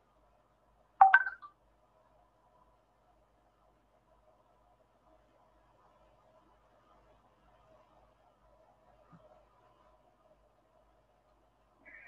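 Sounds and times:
electronic notification tone: 0:01.0 - 0:01.4.

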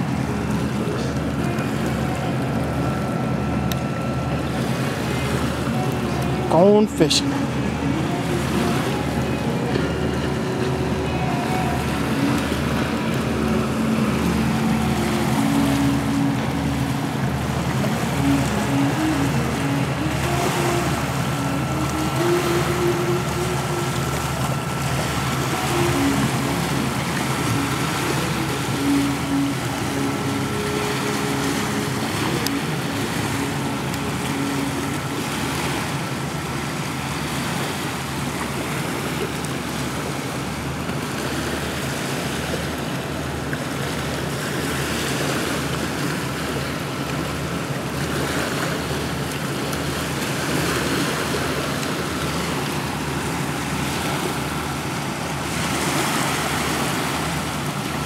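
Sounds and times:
river waves rushing: 0:00.0 - 0:58.0
quiet background music: 0:04.4 - 0:36.3.

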